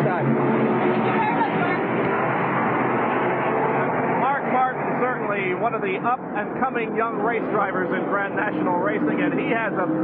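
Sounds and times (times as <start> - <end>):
race car engines running: 0.0 - 10.0.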